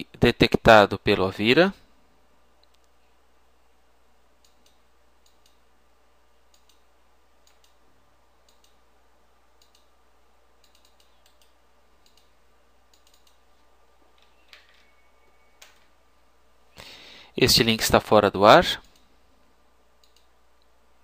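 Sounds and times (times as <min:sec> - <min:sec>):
low steady hum: 0:00.0 - 0:21.0
mouse and keyboard clicks: 0:10.6 - 0:12.3, 0:12.9 - 0:13.4.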